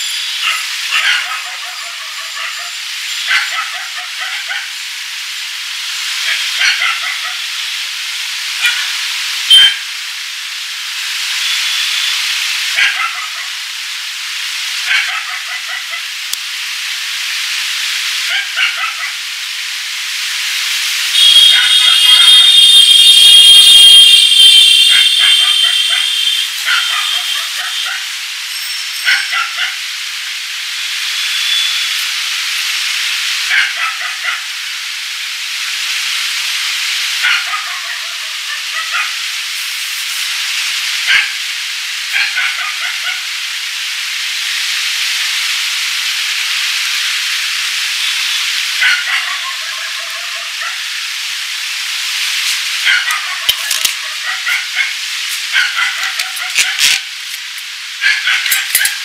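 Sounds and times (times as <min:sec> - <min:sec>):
high ringing tone: 0:00.0 - 0:00.5, 0:21.1 - 0:27.9.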